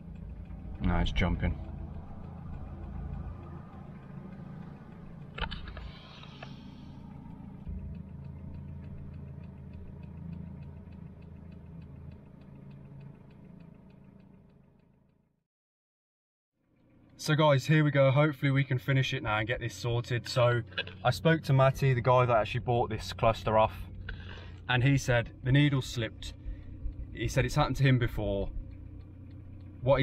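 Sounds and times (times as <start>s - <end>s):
light rapid ticking: 0.0s - 15.2s, 16.8s - 30.0s
car engine and road noise: 0.0s - 15.4s, 16.6s - 30.0s.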